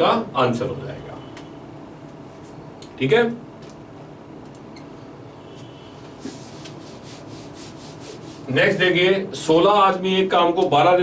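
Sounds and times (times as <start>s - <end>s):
duster rubbing writing board: 6.2s - 8.5s.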